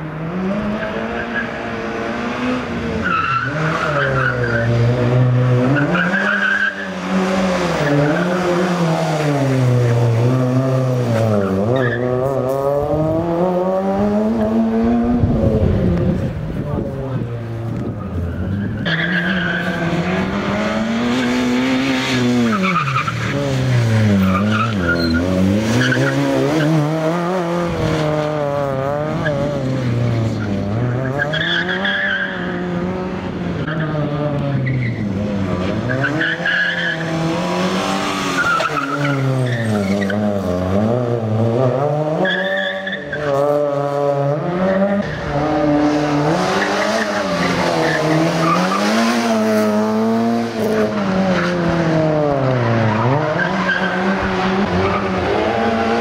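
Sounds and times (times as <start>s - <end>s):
car engine revving hard: 0.1s - 17.2s, 19.0s - 56.0s
tyre squeals: 24.2s - 26.8s.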